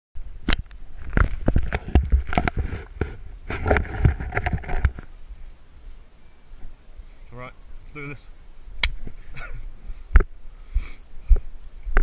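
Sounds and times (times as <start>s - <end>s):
sharp knocks and bumps: 1.0s - 5.1s.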